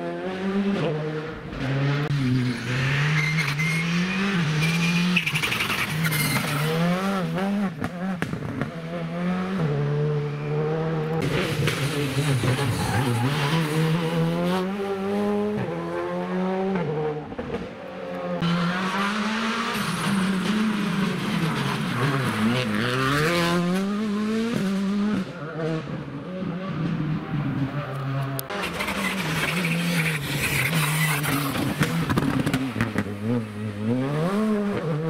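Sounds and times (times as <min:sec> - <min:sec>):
rally car engines accelerating: 0:00.0 - 0:35.0.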